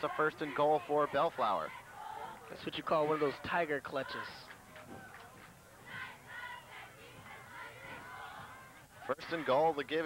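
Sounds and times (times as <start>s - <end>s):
distant shouting voices: 0.0s - 10.0s.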